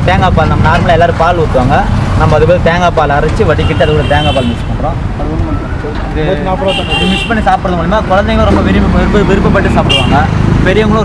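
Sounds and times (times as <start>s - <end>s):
men talking: 0.0s - 11.0s
street traffic rumble: 0.0s - 11.0s.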